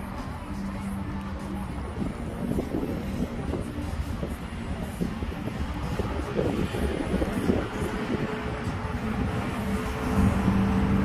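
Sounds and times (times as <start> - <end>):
city background rumble: 0.0 - 11.0.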